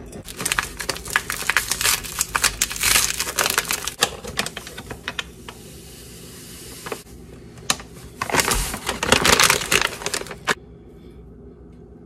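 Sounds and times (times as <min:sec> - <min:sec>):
paper bag crinkling: 0:00.2 - 0:05.6, 0:06.8 - 0:07.0, 0:07.7 - 0:10.6.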